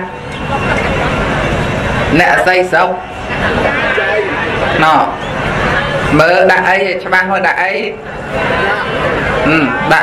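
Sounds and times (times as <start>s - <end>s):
steady rushing noise: 0.0s - 10.0s.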